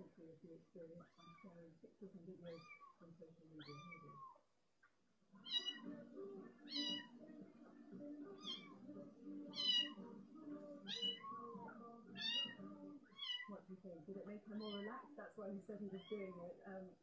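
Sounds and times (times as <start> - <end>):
low steady hum: 0.0 - 4.3
cat meowing: 2.5 - 4.4, 5.4 - 6.0, 6.7 - 7.1, 8.4 - 8.8, 9.5 - 10.0, 10.9 - 13.5.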